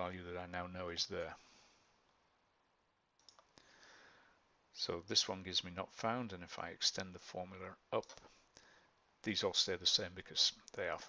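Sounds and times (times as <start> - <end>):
faint computer clicks: 3.2 - 3.7.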